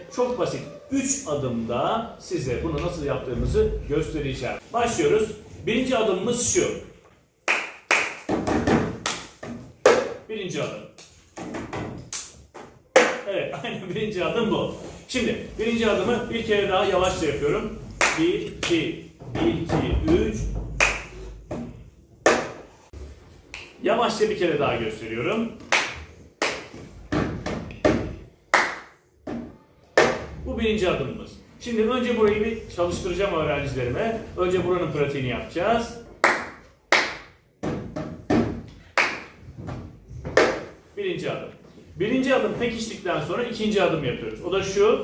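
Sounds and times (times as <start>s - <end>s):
hand claps: 7.4s - 8.4s, 9.0s - 10.1s, 18.0s - 18.8s, 20.8s - 21.2s, 25.7s - 26.8s, 28.5s - 29.0s, 36.2s - 37.3s, 39.0s - 39.4s
hand claps and slaps on desk: 7.5s - 10.2s, 11.0s - 13.2s, 20.8s - 21.6s, 22.2s - 22.7s, 25.6s - 29.0s, 30.0s - 30.3s, 36.2s - 37.4s, 38.3s - 39.4s, 40.2s - 40.8s.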